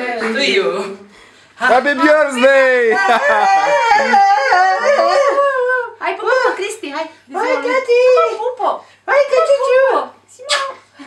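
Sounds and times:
dog howling: 2.9s - 6.0s.

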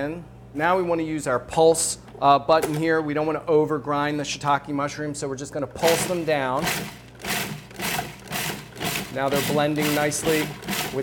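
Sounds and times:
food processor pulsing: 5.9s - 11.0s.

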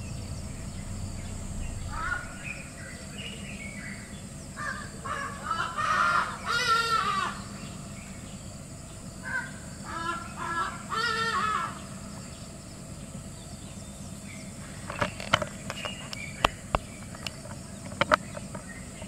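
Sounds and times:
bird calling: 0.0s - 19.0s
low steady background noise: 0.0s - 19.0s.

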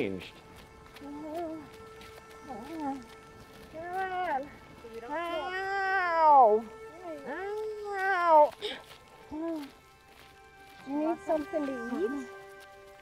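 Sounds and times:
background music: 0.0s - 13.0s
woman wailing cries: 3.7s - 4.5s.

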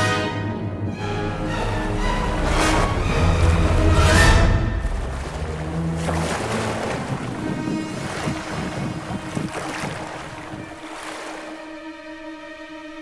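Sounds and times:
small waves washing up pebble beach: 2.3s - 11.6s
wind on microphone: 2.4s - 11.4s.

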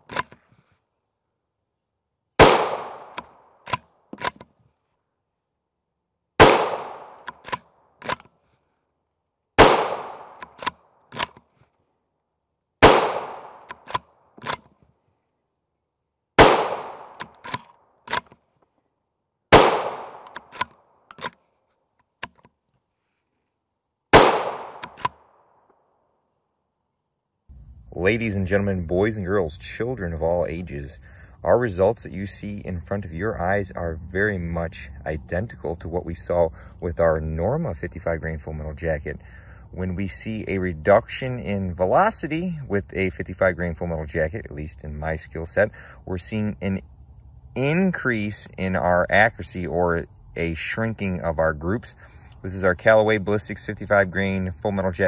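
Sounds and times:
rifle bolt metallic clicks: 0.0s - 0.5s, 2.4s - 4.6s, 6.4s - 8.4s, 9.6s - 11.5s, 12.9s - 14.8s, 16.4s - 18.4s, 19.6s - 21.4s, 22.0s - 22.6s, 24.2s - 25.2s
rifle shots with echo: 2.4s - 3.8s, 6.4s - 7.5s, 9.6s - 10.5s, 12.8s - 14.0s, 16.4s - 17.3s, 19.5s - 20.5s, 24.1s - 25.4s.

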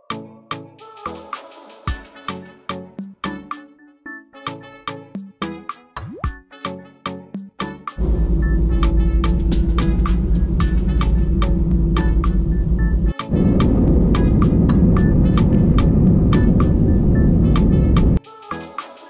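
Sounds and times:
background music with steady beat: 0.0s - 19.0s
aircraft rumbling on runway: 8.0s - 18.2s
jet engine hum: 8.0s - 18.2s.

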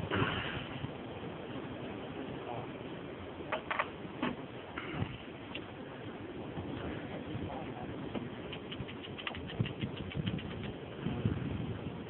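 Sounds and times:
wind: 0.0s - 12.0s.

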